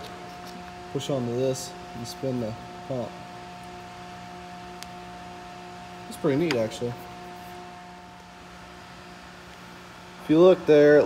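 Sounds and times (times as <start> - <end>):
machine hum: 0.0 - 11.0.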